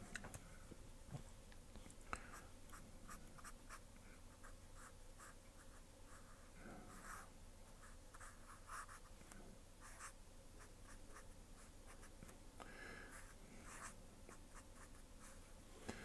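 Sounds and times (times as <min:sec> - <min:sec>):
marker scratching on paper: 0:07.8 - 0:09.1, 0:09.8 - 0:12.1, 0:13.2 - 0:15.4.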